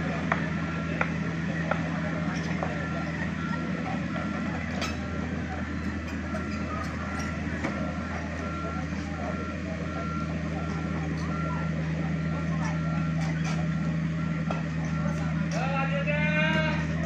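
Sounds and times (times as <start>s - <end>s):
diesel engine running: 0.0s - 17.0s
excavator warning alarm beeping: 0.0s - 17.0s.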